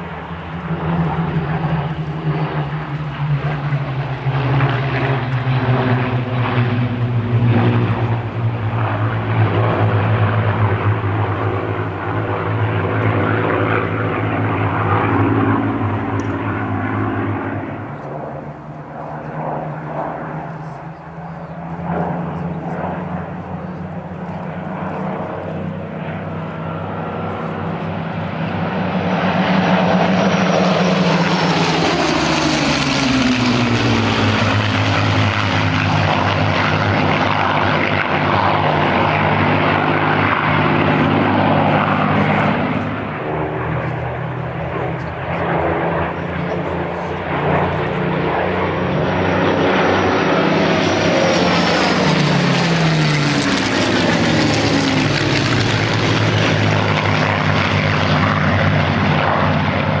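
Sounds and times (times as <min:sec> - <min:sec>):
propeller planes passing overhead: 0:00.0 - 1:00.0.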